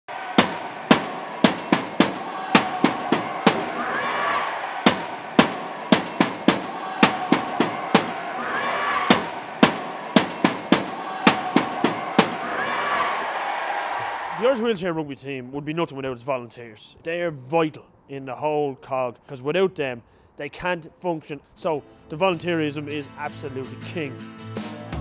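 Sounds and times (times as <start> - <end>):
crowd noise in sports hall: 0.1 - 14.7
wheelchairs clashing metal bangs: 0.4 - 12.9.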